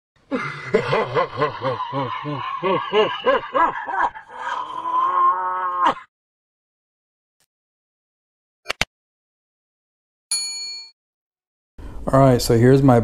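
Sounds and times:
man laughing heartily: 0.3 - 5.0.

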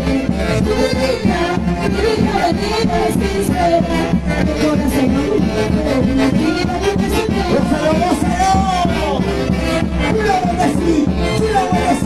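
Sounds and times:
dance orchestra with saxophones: 0.0 - 12.0.

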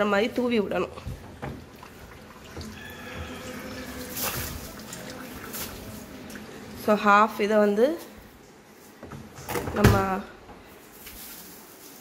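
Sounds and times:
liquid pouring from plastic bottle: 1.0 - 6.8.

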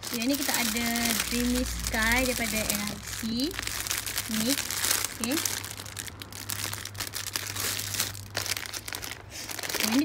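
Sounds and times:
low steady hum: 0.0 - 10.0
plastic packaging crinkling: 0.0 - 10.0.

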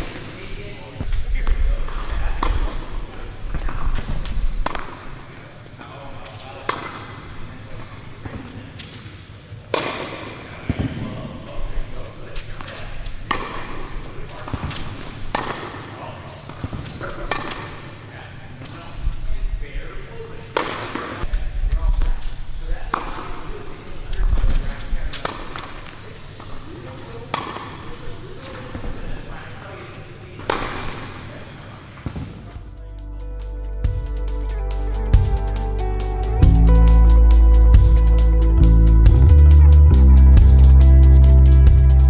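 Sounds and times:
tennis balls hit by racquets: 1.0 - 5.5, 6.2 - 11.4, 12.2 - 18.8, 19.8 - 22.1, 22.8 - 29.6, 30.4 - 32.4
tennis balls bouncing on court: 3.5 - 5.2, 6.6 - 7.3, 9.7 - 11.1, 12.7 - 18.0, 20.5 - 21.2, 22.9 - 23.3, 24.1 - 29.2, 30.4 - 31.3
music: 32.6 - 42.0.

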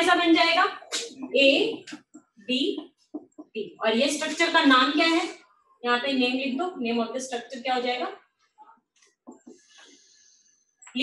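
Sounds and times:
marker squeaking on a whiteboard: 8.4 - 10.7.

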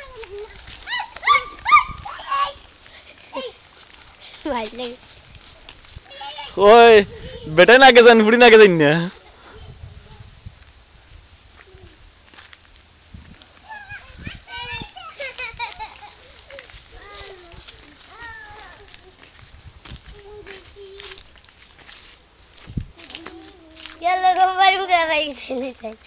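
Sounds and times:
people talking: 0.0 - 2.6, 13.6 - 19.2, 23.0 - 26.0
small child's voice: 0.0 - 2.7, 6.1 - 6.6, 13.6 - 19.3, 20.0 - 21.3, 23.0 - 26.0.

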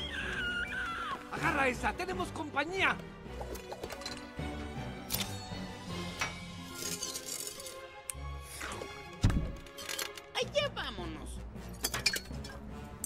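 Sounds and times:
background music: 0.0 - 13.0
glass bottles clinking and shattering: 3.4 - 4.4, 6.2 - 7.8, 11.7 - 12.7.

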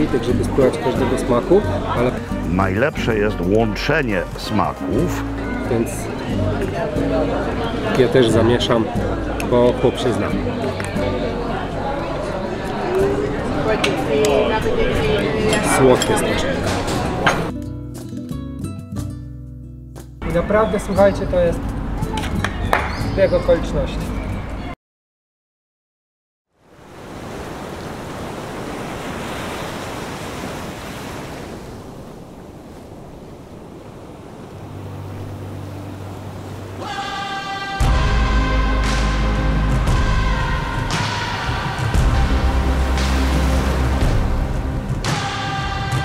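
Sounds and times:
tableware clinking: 15.4 - 17.5
surf washing up sandy beach: 26.6 - 38.0, 40.7 - 46.0.

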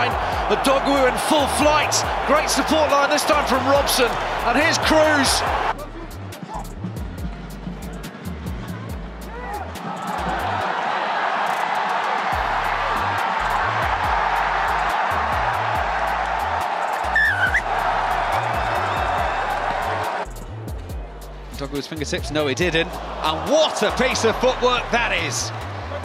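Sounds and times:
stadium crowd cheering: 0.0 - 6.7, 7.6 - 26.0
music with pulsing bass beat: 0.0 - 10.6, 12.3 - 23.2.

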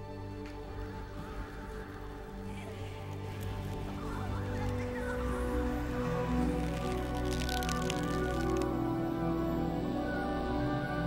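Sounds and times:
atmospheric background music: 0.0 - 11.0.

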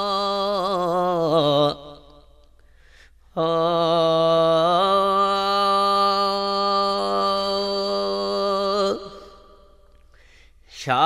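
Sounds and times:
man singing long held notes: 0.0 - 2.0, 3.4 - 9.6.

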